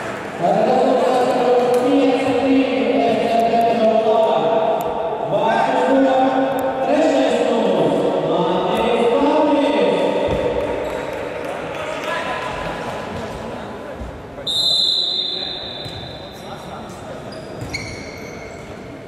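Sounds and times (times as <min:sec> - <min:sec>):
voices calling out in echoing hall: 0:00.0 - 0:19.0
referee's whistle blast: 0:14.5 - 0:16.3.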